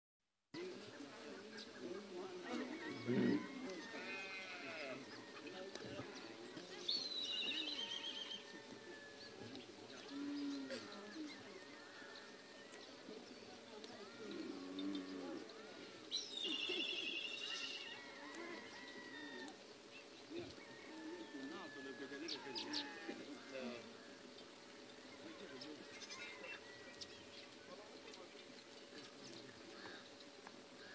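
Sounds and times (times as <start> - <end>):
farm animals calling: 0.6 - 30.9
people's voices: 0.6 - 30.9
sheep and goats bleating: 2.5 - 5.1, 22.4 - 23.9.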